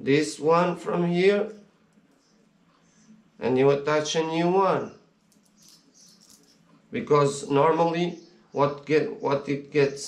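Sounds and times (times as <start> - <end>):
small metal parts clicking: 5.3 - 6.6.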